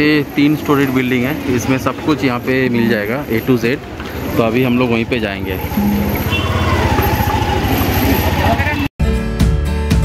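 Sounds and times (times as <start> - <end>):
street crowd voices: 0.0 - 8.9
auto-rickshaw engine throbbing: 3.2 - 8.9.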